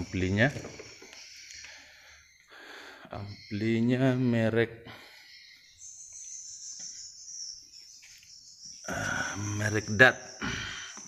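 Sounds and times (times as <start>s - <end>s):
insect trill: 0.0s - 11.0s.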